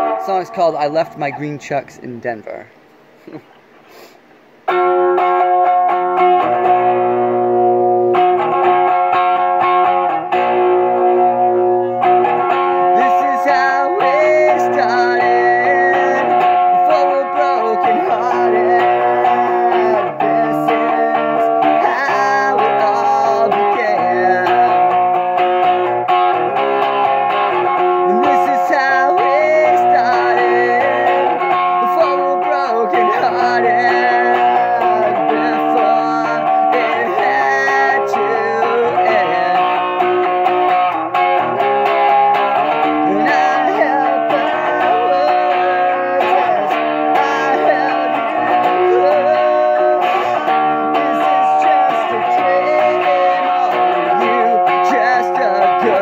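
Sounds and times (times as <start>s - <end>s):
electric guitar strumming chords: 0.0s - 3.0s, 4.4s - 56.0s
man singing: 10.8s - 26.0s, 27.6s - 56.0s.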